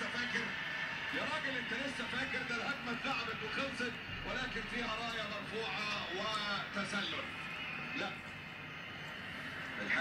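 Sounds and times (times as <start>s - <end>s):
man commentating on television: 0.0s - 10.0s.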